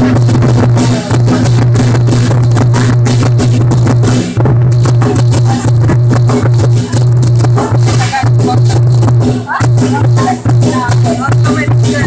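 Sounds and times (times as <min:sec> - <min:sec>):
big drum fast roll: 0:00.0 - 0:12.0
cymbals clashing: 0:00.0 - 0:12.0.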